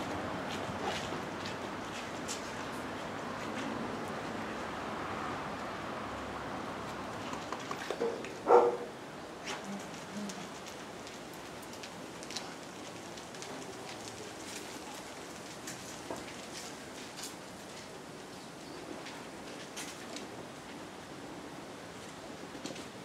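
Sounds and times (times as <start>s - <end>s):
steady rain hiss: 8.3s - 23.0s
rain drop ticks: 10.2s - 17.3s.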